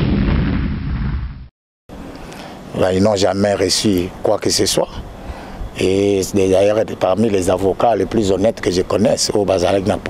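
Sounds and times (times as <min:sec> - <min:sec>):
explosion-like boom rumbling: 0:00.0 - 0:01.5.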